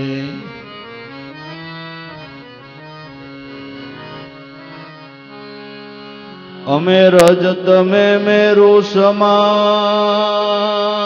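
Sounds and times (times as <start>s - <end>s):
man singing devotional song: 0.0s - 2.4s, 6.0s - 11.0s
harmonium: 0.0s - 11.0s.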